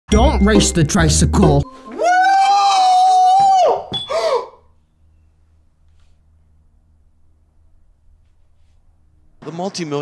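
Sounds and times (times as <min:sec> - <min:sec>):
wavering cry: 0:01.9 - 0:04.6
person screaming: 0:02.0 - 0:04.6
faint low hum: 0:04.6 - 0:09.4.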